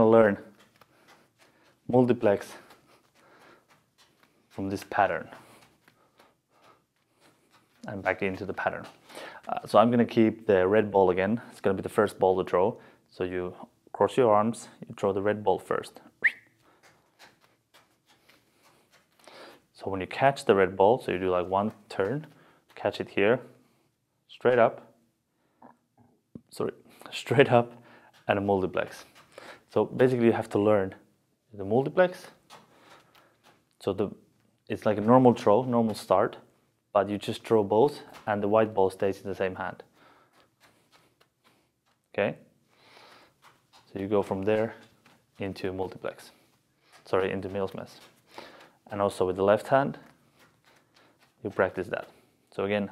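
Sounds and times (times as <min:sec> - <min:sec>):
high whistle-like chirp: 0:16.2 - 0:16.6.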